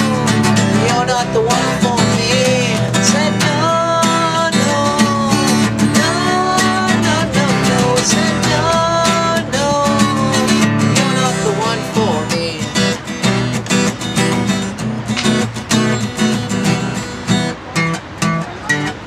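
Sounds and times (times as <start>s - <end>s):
man singing: 0.0s - 13.0s
acoustic guitar strumming: 0.0s - 19.0s.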